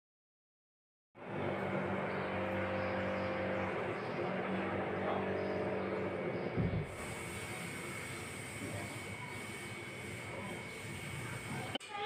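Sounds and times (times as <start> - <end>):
motor or fan humming: 1.2 - 11.8.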